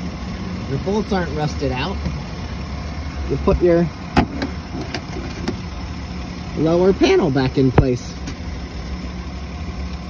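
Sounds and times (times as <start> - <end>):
car engine idling: 0.0 - 10.0.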